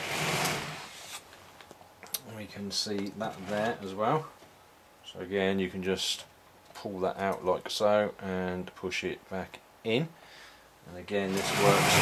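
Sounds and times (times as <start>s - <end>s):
plastic model scraping on table: 3.3s - 3.8s.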